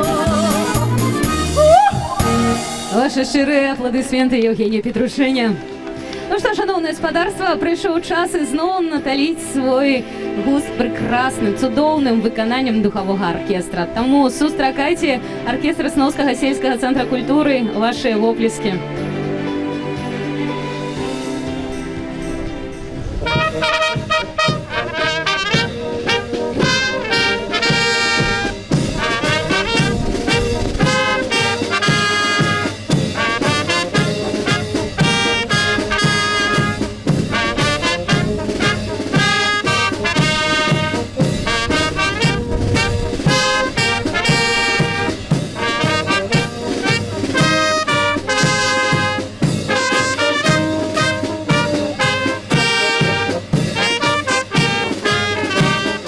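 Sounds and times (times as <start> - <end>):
brass band playing: 0.0 - 4.2, 18.8 - 56.0.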